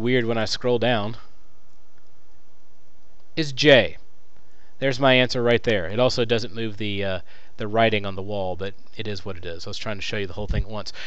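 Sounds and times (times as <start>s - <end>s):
man speaking: 0.0s - 1.3s, 3.4s - 4.0s, 4.8s - 11.0s
microphone hiss: 0.0s - 11.0s.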